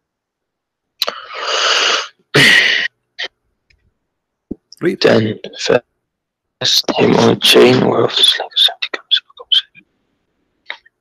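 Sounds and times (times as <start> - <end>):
person sneezing: 1.0 - 2.9.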